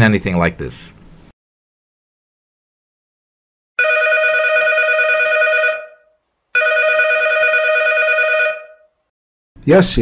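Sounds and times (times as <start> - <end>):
telephone ringing: 3.8 - 9.0.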